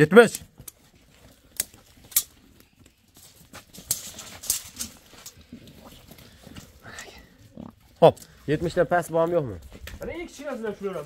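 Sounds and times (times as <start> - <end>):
hooves shuffling on earth: 0.2 - 11.0.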